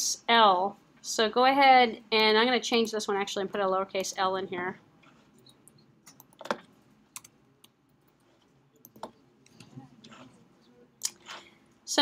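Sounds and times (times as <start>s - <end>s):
computer keyboard keystrokes: 8.8s - 9.2s.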